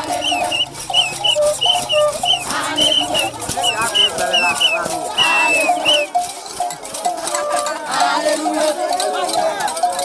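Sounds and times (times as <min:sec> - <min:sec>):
shrill high notes: 0:00.0 - 0:06.2
women singing and chanting: 0:00.0 - 0:10.0.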